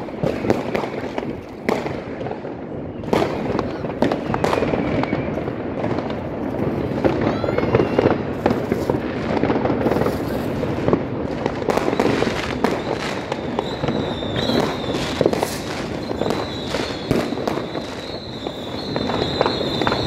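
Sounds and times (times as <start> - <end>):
firework crackling: 0.0 - 20.0
fireworks and firecrackers banging: 0.0 - 20.0
whistling rockets: 0.0 - 20.0.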